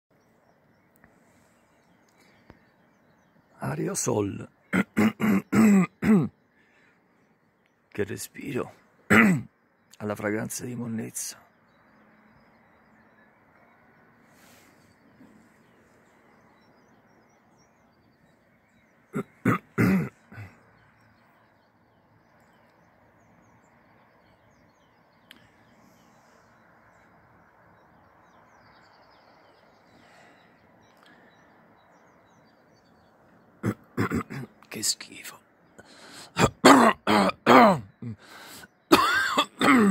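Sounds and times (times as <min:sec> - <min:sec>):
faint outdoor background noise: 0:00.1 - 0:39.9
harsh coughs or barks: 0:04.8 - 0:06.3, 0:09.1 - 0:09.5, 0:19.2 - 0:20.5, 0:33.6 - 0:34.5, 0:36.4 - 0:37.9, 0:38.9 - 0:39.9.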